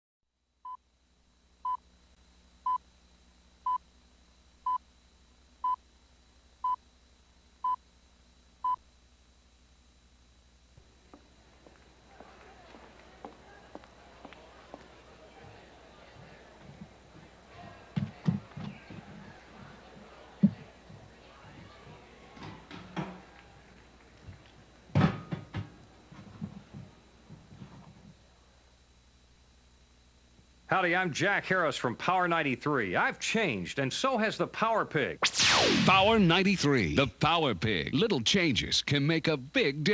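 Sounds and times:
faint low tape hum: 0.3s - 39.9s.

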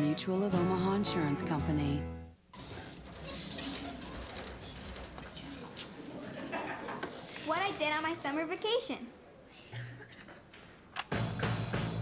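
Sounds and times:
rustles and ticks from desks: 2.6s - 7.5s
murmur of children's voices: 3.1s - 9.3s.

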